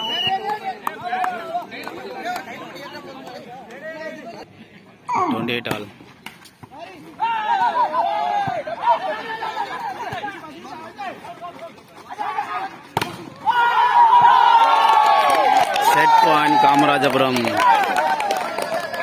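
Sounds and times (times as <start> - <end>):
people shouting: 6.8 - 11.3, 12.1 - 16.9.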